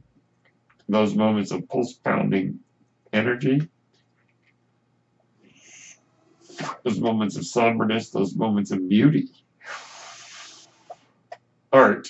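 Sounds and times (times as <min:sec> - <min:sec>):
man speaking: 0:00.9 - 0:03.7, 0:06.5 - 0:09.4, 0:11.7 - 0:12.0
ventilator air hiss: 0:05.5 - 0:08.4, 0:09.0 - 0:11.2.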